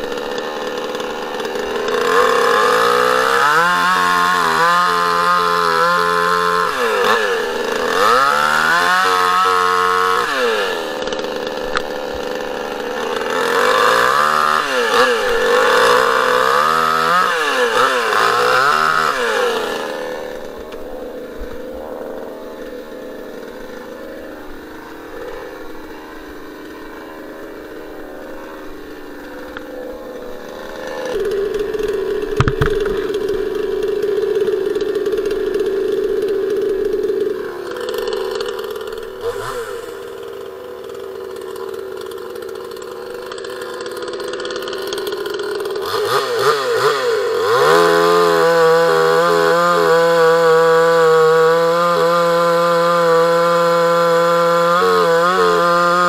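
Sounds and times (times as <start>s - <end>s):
chainsaw cutting log: 0.0s - 56.0s
chainsaw running and revving: 0.0s - 56.0s.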